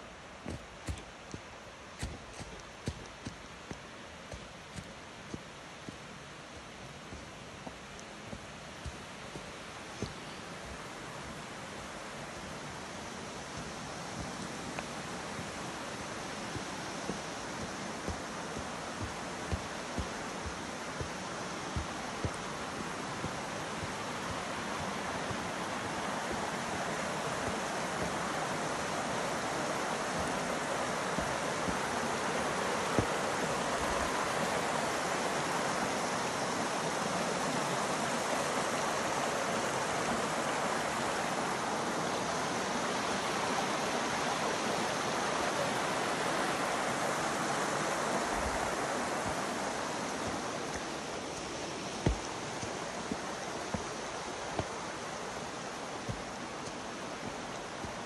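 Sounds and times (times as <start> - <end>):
creek rushing over stones: 0.0 - 58.0.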